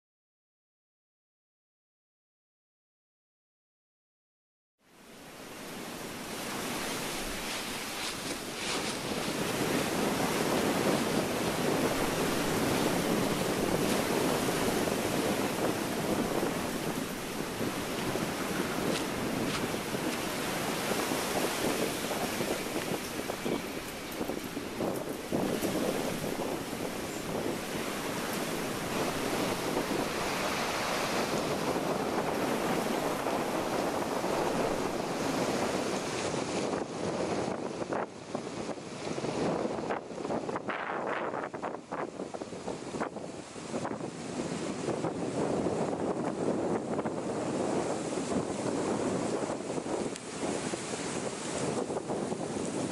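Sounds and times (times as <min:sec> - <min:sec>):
wind noise on microphone: 0:05.1 - 0:52.9
walking through dry leaves: 0:06.4 - 0:10.5.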